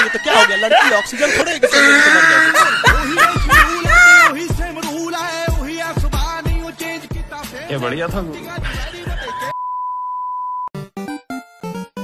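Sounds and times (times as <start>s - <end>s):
rap music: 2.8s - 9.5s.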